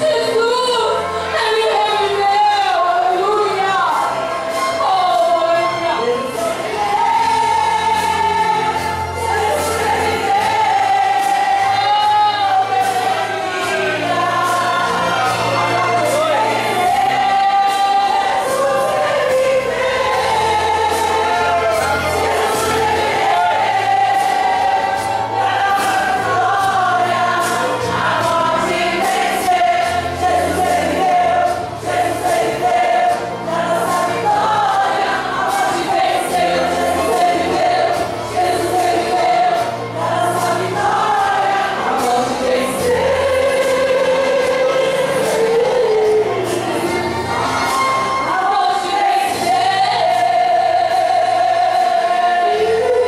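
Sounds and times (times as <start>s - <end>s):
women's choir singing a hymn: 0.0s - 53.0s.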